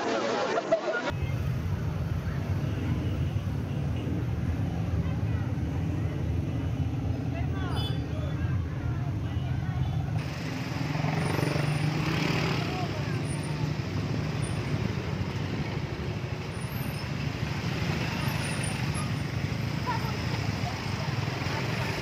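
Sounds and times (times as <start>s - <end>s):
motorbikes passing: 1.0s - 22.0s
people's voices: 11.1s - 16.8s, 17.9s - 22.0s.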